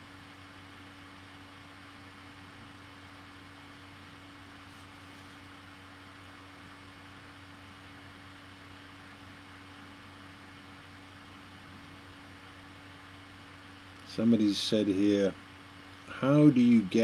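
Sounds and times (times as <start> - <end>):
even hiss: 14.0 - 15.4.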